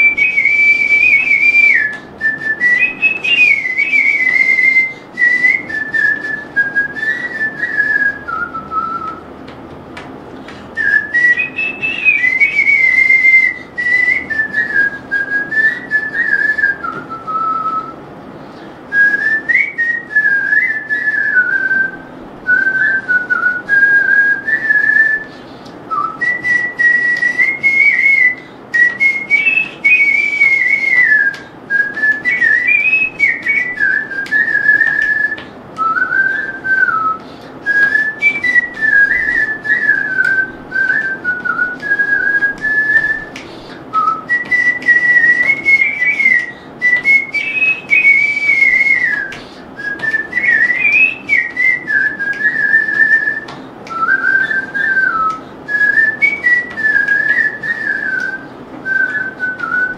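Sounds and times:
person whistling a melody: 0.0 - 9.3, 10.7 - 18.0, 18.9 - 59.9.

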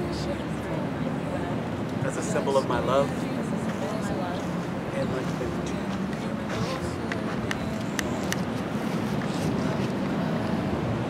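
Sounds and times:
ocean surf: 0.0 - 11.0
wind: 0.0 - 11.0.

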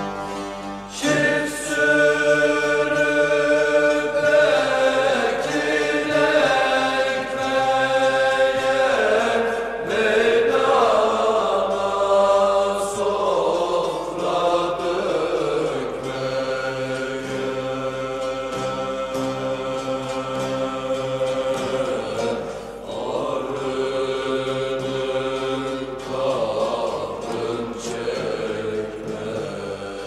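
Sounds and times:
voices singing folk melody: 0.0 - 30.0.

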